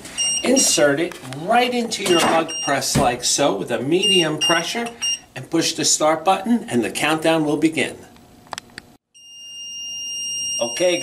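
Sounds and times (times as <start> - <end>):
timer alarm high-pitched tone: 9.1 - 11.0.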